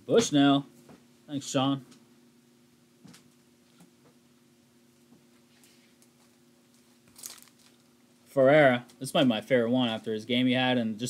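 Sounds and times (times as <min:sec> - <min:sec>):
faint steady hum: 0:00.0 - 0:11.0
plastic crinkling: 0:06.0 - 0:07.9.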